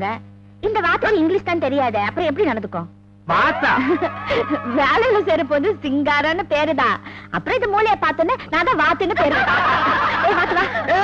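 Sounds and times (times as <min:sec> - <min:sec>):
low steady hum: 0:00.0 - 0:11.0
group of people laughing: 0:03.3 - 0:04.8, 0:09.1 - 0:11.0.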